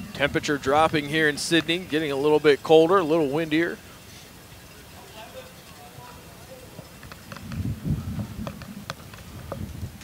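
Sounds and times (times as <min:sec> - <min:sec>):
wind buffeting microphone: 0:00.0 - 0:03.0, 0:06.0 - 0:10.0.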